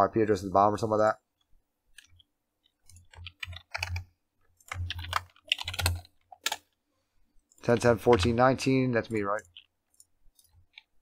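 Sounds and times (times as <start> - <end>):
computer keyboard typing: 1.9 - 6.7, 9.2 - 11.0.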